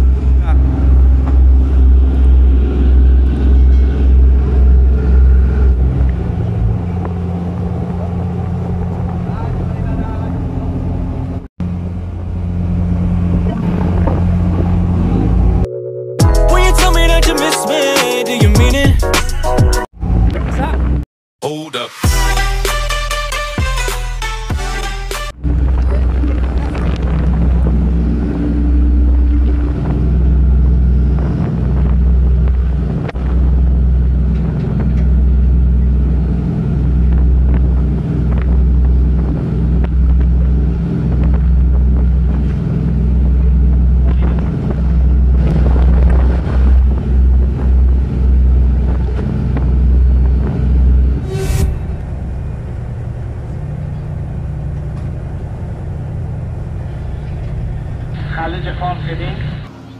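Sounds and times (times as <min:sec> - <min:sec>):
wind buffeting microphone: 0:00.0 - 0:15.6, 0:25.4 - 0:58.2
ship engines droning: 0:00.0 - 0:18.4, 0:22.2 - 0:59.9
machinery hum: 0:25.4 - 0:59.9.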